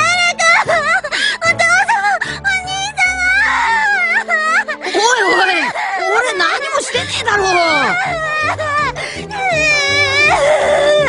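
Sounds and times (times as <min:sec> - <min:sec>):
background music with low notes: 0:00.0 - 0:11.0
woman wailing and sobbing: 0:00.0 - 0:11.0.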